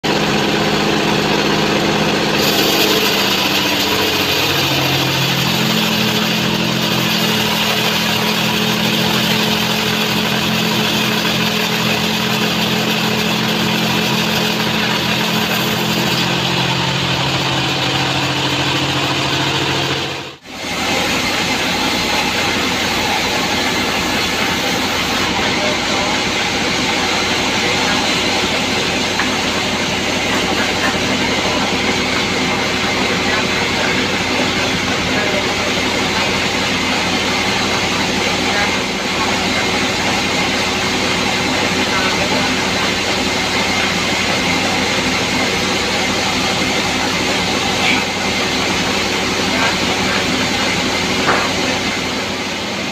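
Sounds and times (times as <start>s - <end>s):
band sawmill sawing log: 0.0s - 52.9s.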